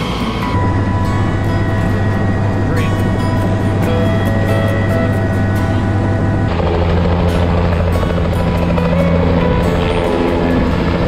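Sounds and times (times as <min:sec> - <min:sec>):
background music: 0:00.0 - 0:11.0
helicopter rotor and turbine: 0:00.0 - 0:11.0.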